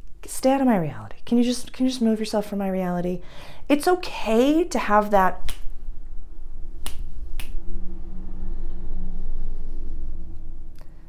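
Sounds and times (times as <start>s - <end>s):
steady low rumble: 0.0s - 11.0s
finger snaps: 5.4s - 5.7s, 6.8s - 7.6s.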